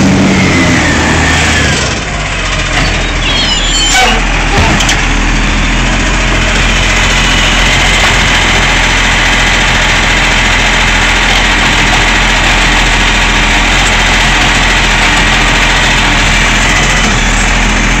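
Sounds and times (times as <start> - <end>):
garbage truck diesel engine running: 0.0 - 18.0
hydraulic arm lifting bin: 0.4 - 8.7.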